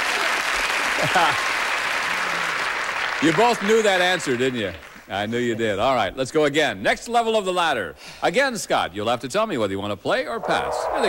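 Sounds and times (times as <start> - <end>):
studio audience applauding: 0.0 - 5.1.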